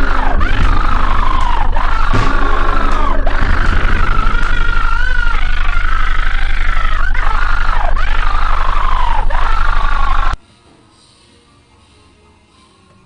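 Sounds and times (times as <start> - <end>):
distorted droning high tone: 0.0 - 10.4
heavy low hum: 0.0 - 10.4.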